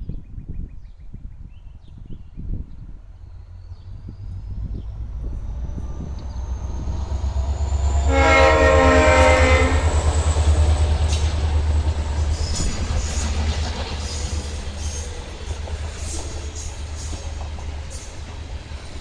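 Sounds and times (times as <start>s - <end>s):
locomotive engine rumble: 2.8s - 19.0s
train horn: 7.7s - 11.2s
wheels clicking over rail joints: 10.7s - 19.0s.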